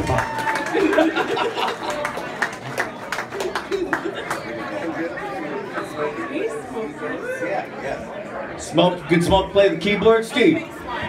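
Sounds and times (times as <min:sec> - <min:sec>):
overlapping voices chattering: 0:00.0 - 0:11.0.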